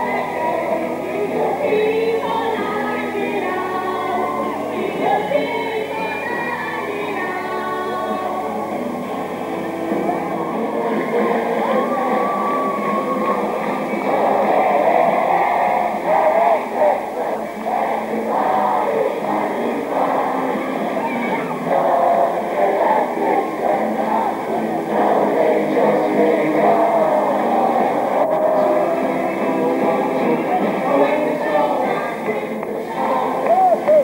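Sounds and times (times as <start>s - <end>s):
crowd singing and shouting: 0.0s - 34.0s
live music: 0.0s - 34.0s.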